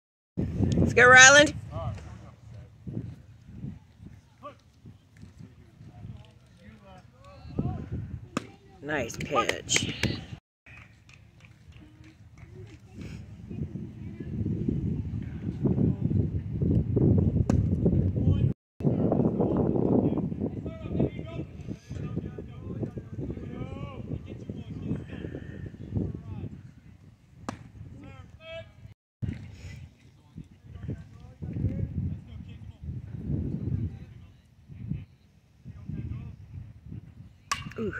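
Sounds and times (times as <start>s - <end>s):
baseball sharp crack: 8.3s - 8.6s, 27.4s - 27.8s, 37.5s - 37.9s.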